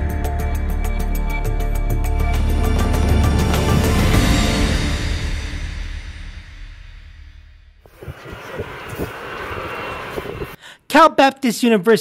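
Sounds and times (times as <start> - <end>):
jet engines rushing: 7.8 - 10.6.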